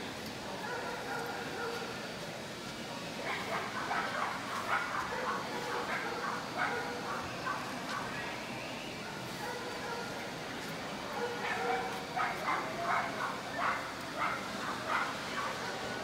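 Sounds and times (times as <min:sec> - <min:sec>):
chatter of busy hall: 0:00.0 - 0:16.0
dog barking: 0:00.6 - 0:01.9, 0:03.2 - 0:08.0, 0:09.4 - 0:10.2, 0:11.1 - 0:15.8.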